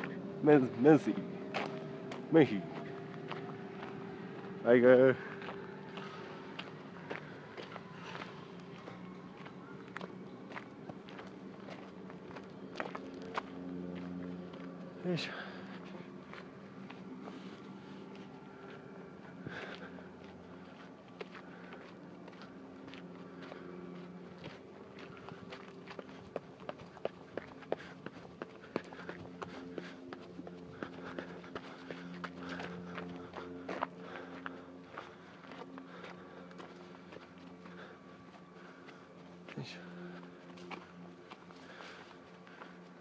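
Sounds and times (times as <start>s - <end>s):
faint low hum: 0.0s - 43.0s
footsteps on a path: 0.0s - 43.0s.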